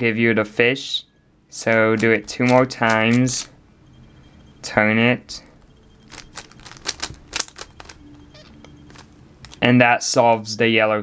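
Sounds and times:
puzzle cube clicking: 0:01.8 - 0:03.5, 0:06.1 - 0:09.6.

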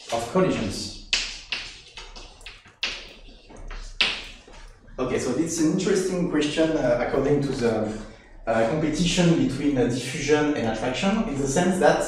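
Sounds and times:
chalk tapping and scratching: 0:00.9 - 0:04.8.

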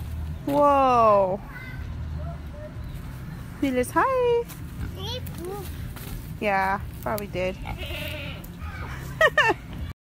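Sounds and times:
farm animal bleating: 0:07.4 - 0:08.7.

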